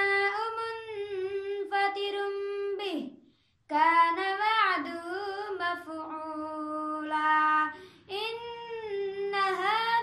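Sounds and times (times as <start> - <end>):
boy chanting melodically: 0.0 - 10.0.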